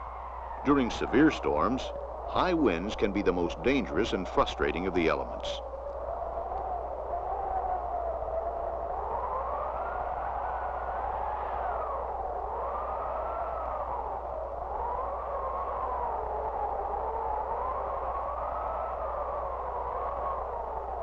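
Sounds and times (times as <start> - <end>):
howling wind: 0.0 - 21.0.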